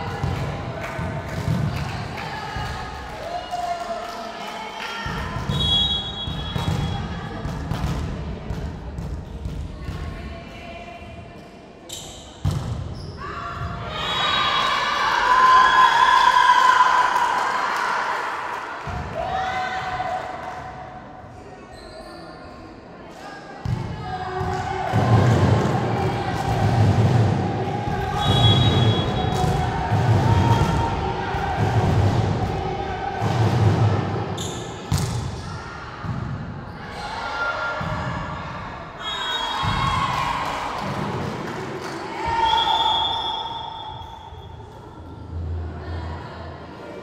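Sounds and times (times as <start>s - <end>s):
players shouting in hall: 13.2s - 20.6s, 24.2s - 34.4s, 36.7s - 44.0s.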